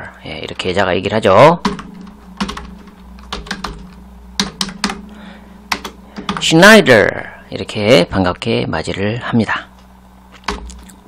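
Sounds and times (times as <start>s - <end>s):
computer keyboard typing: 1.6s - 5.0s, 5.7s - 6.5s, 10.4s - 11.0s.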